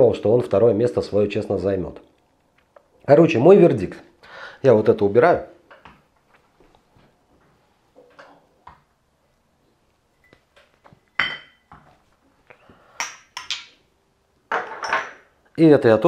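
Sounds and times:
glass bottles and glasses clinking: 11.0 - 11.8, 13.0 - 13.8, 14.5 - 15.3.

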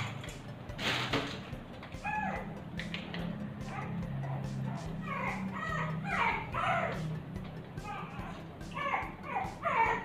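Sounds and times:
puppy yipping and whining: 1.9 - 2.5, 3.6 - 7.2, 7.8 - 10.0.

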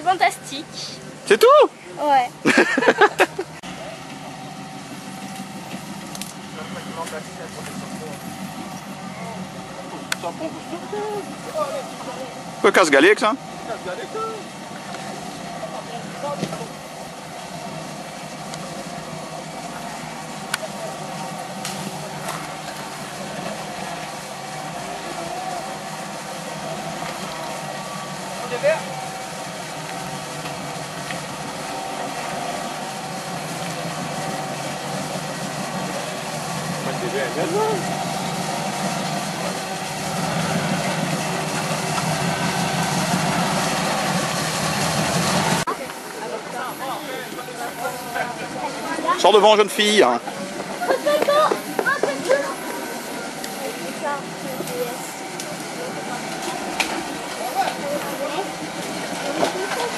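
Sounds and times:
engine running at low speed: 0.0 - 59.9.

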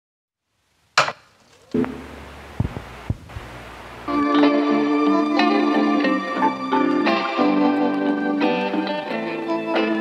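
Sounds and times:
sharp knock: 1.0 - 2.7.

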